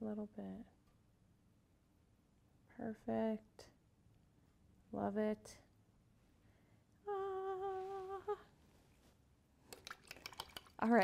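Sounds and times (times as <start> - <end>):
woman humming: 7.0 - 8.5.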